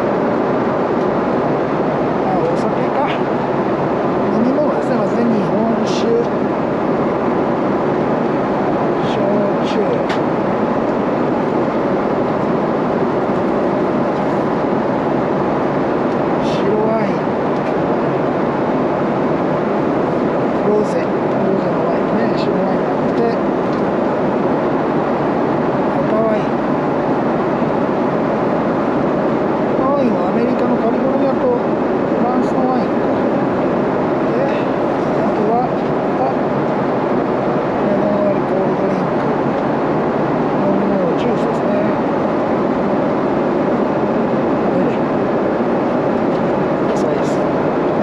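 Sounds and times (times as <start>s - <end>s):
airliner cabin noise: 0.0s - 48.0s.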